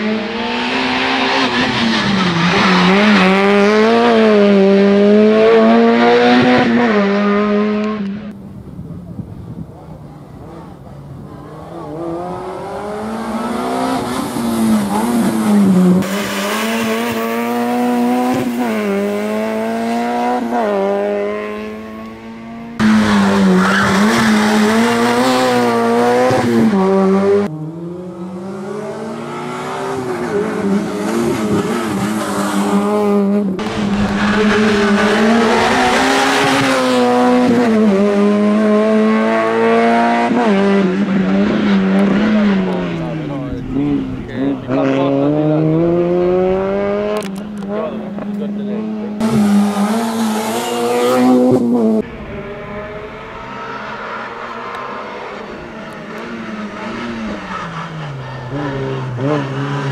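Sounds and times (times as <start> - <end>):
car engine revving hard: 0.0 - 8.3, 11.5 - 59.9.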